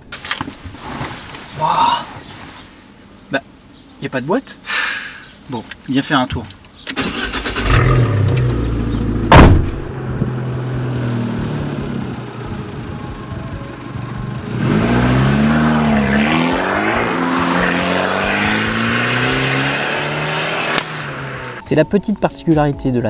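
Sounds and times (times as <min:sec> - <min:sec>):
car engine running: 0:06.9 - 0:21.6
loud thump: 0:09.3 - 0:10.3.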